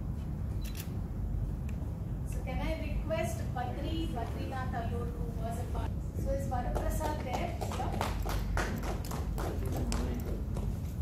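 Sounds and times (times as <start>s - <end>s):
people clapping: 6.6s - 10.8s.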